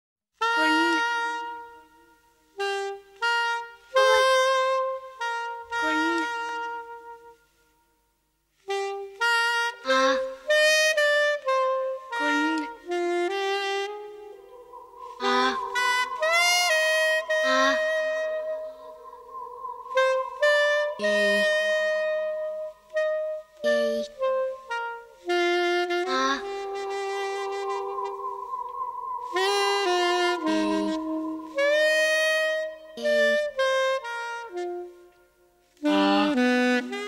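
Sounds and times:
saxophone slow melody: 0:00.4 - 0:37.0
steady held tone: 0:12.9 - 0:23.1, 0:25.2 - 0:33.1.

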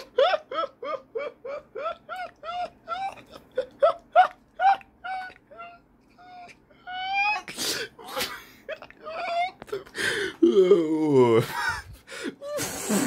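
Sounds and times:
person crying out rhythmically: 0:00.0 - 0:13.0.

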